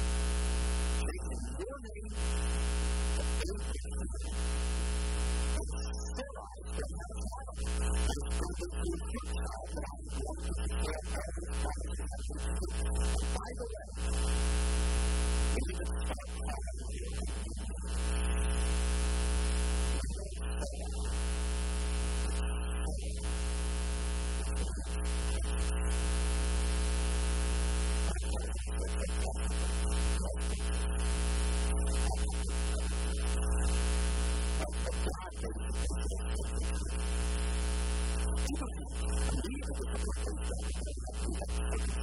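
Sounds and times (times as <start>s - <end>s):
faint man's voice: 1.0s - 4.6s, 5.5s - 14.3s, 15.5s - 18.6s, 19.9s - 21.3s, 22.2s - 23.4s, 24.4s - 25.8s, 28.1s - 31.0s, 31.6s - 37.1s, 38.2s - 42.0s.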